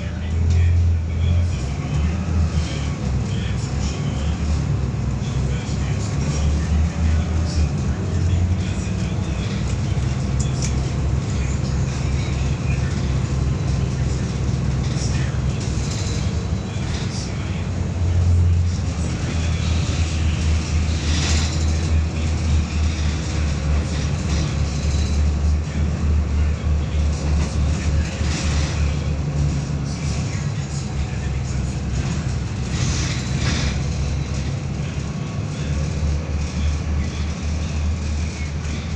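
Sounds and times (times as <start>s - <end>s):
bus diesel engine drone: 0.0s - 38.9s.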